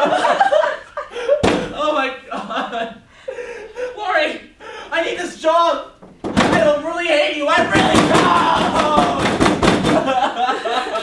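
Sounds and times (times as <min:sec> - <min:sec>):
fist pounding on door: 0:01.4 - 0:01.8, 0:06.2 - 0:06.7, 0:07.6 - 0:10.1
person speaking: 0:01.6 - 0:02.9, 0:03.7 - 0:09.5.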